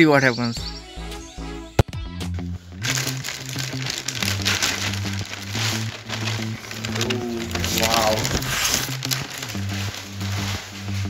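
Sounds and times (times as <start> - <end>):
background music with bass notes: 0.0 - 11.0
plastic bag crinkling: 2.8 - 11.0.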